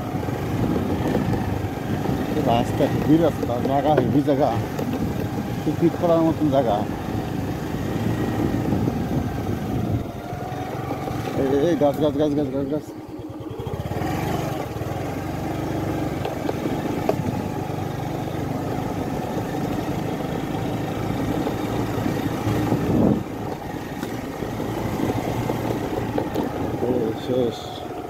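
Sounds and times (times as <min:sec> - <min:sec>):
vehicle engine running: 0:00.0 - 0:28.0.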